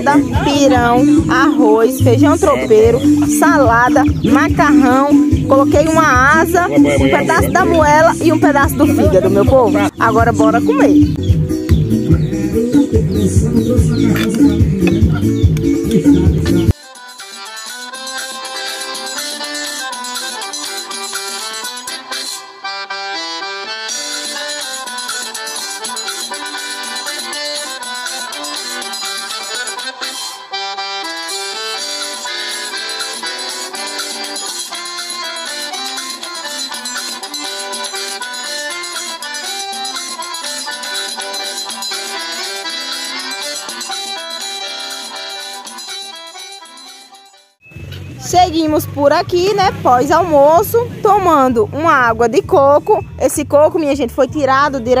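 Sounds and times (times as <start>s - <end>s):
instrumental background music: 0.0s - 55.0s.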